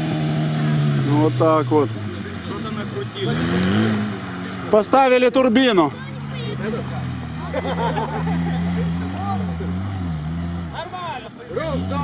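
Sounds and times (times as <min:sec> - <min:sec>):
vehicle engine running: 0:00.0 - 0:12.0
voices talking: 0:01.0 - 0:12.0.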